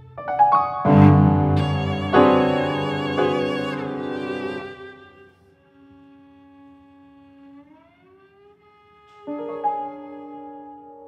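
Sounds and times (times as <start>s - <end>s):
bowed cello note sliding upward: 0.8s - 11.0s.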